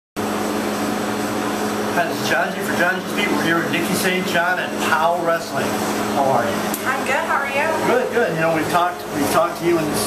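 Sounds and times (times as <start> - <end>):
ventilation system rushing hum: 0.2 - 10.0.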